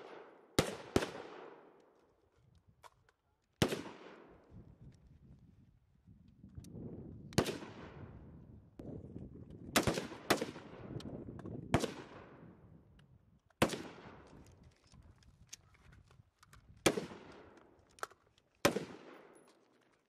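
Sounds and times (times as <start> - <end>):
loud rifle shots with echo: 0.0 - 1.7, 3.6 - 4.3, 9.8 - 10.9, 11.7 - 12.4, 13.6 - 14.2, 16.8 - 17.5, 18.6 - 19.3
fainter distant rifle shots: 9.8 - 10.8.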